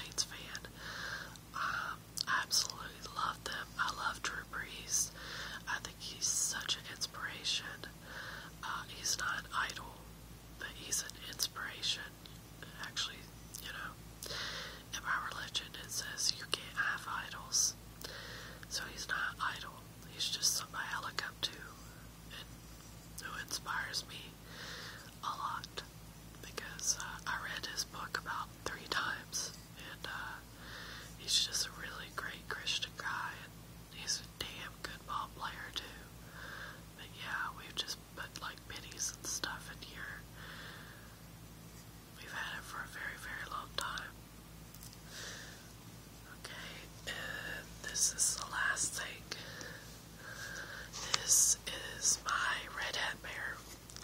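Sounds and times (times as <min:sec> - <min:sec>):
person whispering: 0:00.0 - 0:00.7, 0:01.5 - 0:07.9, 0:08.5 - 0:10.0, 0:10.6 - 0:14.0, 0:14.9 - 0:17.8, 0:18.6 - 0:22.6, 0:23.2 - 0:24.4, 0:25.0 - 0:30.4, 0:31.1 - 0:36.1, 0:37.0 - 0:40.3, 0:42.2 - 0:44.2, 0:46.2 - 0:54.0
faint low hum: 0:00.0 - 0:54.0.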